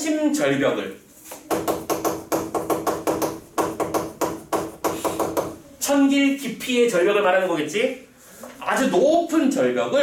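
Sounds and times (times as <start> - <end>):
chalk writing on a chalkboard: 3.2 - 5.6.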